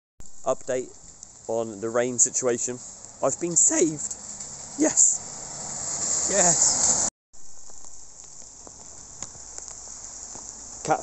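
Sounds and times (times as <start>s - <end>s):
ticks of raindrops: 0.2s - 6.2s, 7.4s - 11.0s
rain falling: 0.2s - 11.0s.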